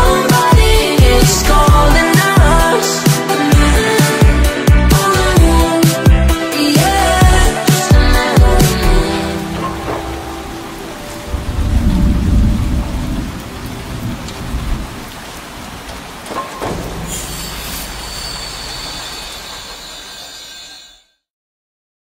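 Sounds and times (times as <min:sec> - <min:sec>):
song music: 0:00.0 - 0:13.4
steady rain-like hiss: 0:08.8 - 0:19.9
low rumble: 0:11.1 - 0:14.9.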